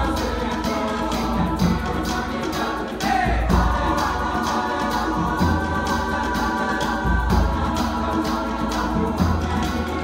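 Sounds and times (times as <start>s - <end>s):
choir singing gospel song: 0.0s - 10.0s.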